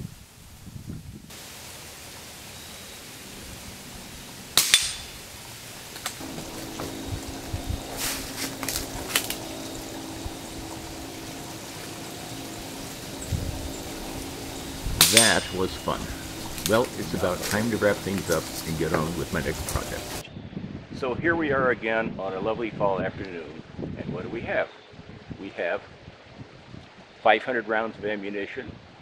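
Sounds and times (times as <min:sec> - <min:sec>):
steady low hum: 0:01.4 - 0:20.2.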